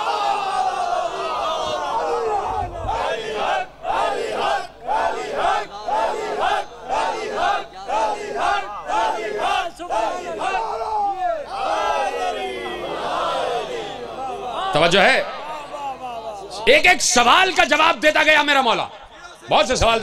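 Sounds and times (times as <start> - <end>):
crowd shouting back: 0.0 - 16.6.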